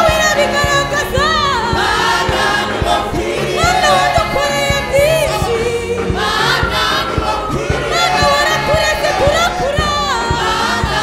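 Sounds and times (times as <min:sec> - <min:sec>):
gospel choir singing: 0:00.0 - 0:11.0
steady low beat: 0:00.0 - 0:11.0.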